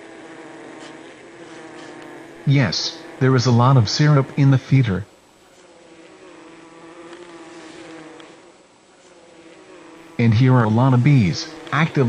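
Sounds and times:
honey bees buzzing: 0.0 - 12.0.

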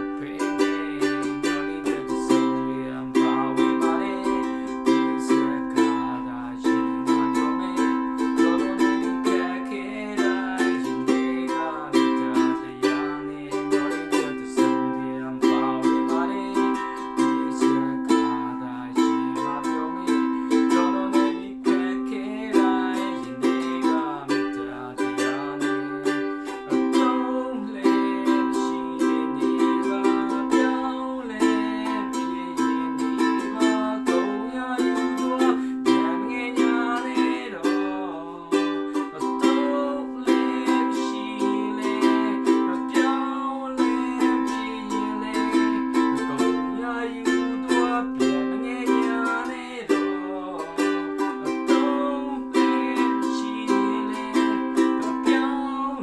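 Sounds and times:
ukulele strumming: 0.0 - 56.0.

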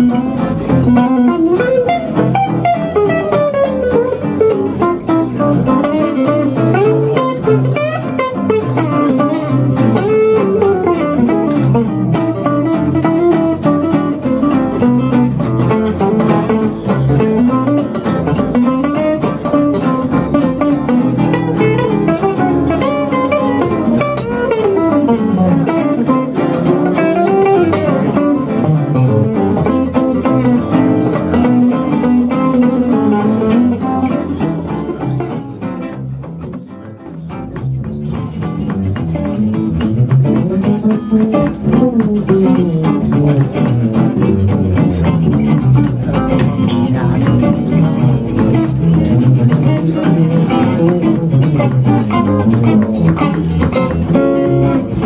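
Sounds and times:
steady bass notes: 0.0 - 55.0.

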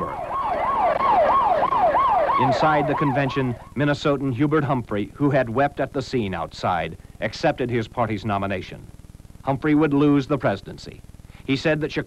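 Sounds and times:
siren in fast yelp: 0.0 - 3.8.

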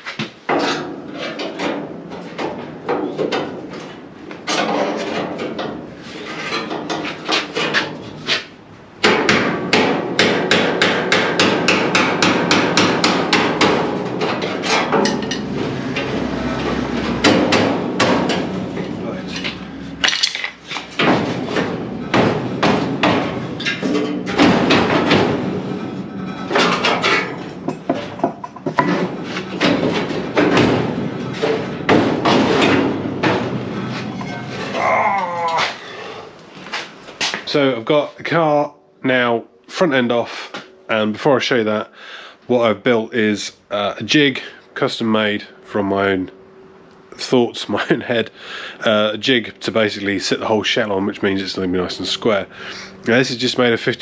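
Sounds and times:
hammer striking metal chisel: 9.0 - 13.9.

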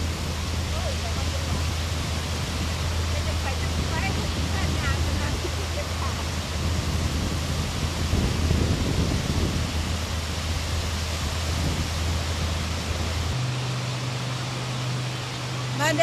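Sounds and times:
low steady hum: 0.0 - 16.0
waves on a lakeshore: 0.0 - 16.0
wind: 0.0 - 16.0.

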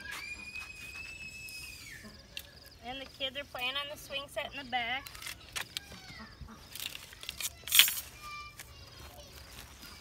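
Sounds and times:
child screaming: 0.0 - 2.2, 5.0 - 6.4.

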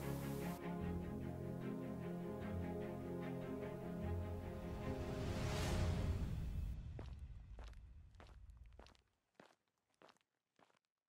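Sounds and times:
low background music: 0.0 - 6.8
footsteps walking: 6.8 - 10.8.

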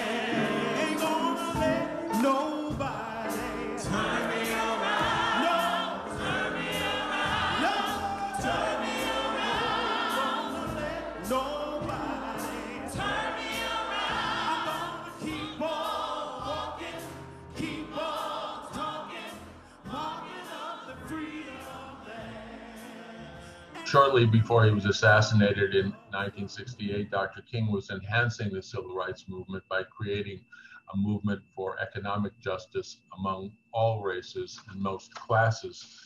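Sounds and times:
woman singing gospel song: 0.0 - 23.2
choir singing: 0.0 - 27.3.

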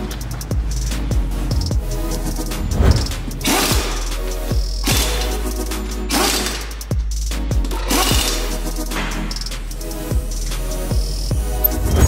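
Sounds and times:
electronic music with deep bass: 0.0 - 12.0.

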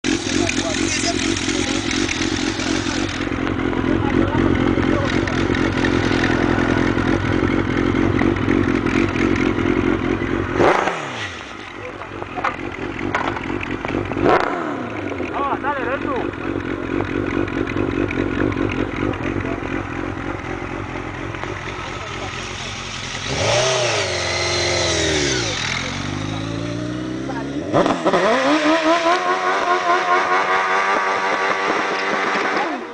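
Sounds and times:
exhaust crack: 0.0 - 32.9
motorcycle engine revving: 0.0 - 32.9
rear tyre spinning: 0.1 - 32.9.

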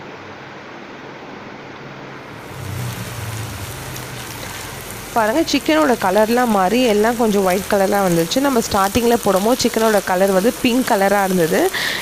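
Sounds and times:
low hum: 2.2 - 8.6
meat sizzling in a pan: 2.3 - 12.0.

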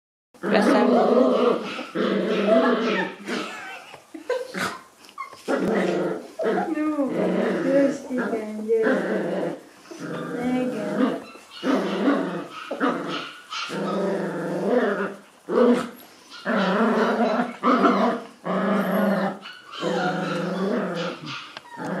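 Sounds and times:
puppy play-growling: 0.4 - 22.0.

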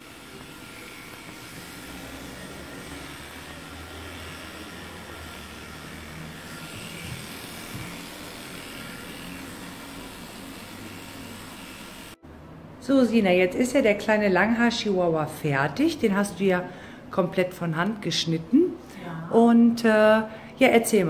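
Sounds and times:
electric clipper motor hum: 0.0 - 12.2.

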